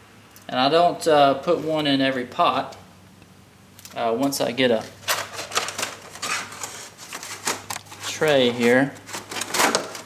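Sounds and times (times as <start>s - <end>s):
plastic containers clattering: 4.9s - 10.0s.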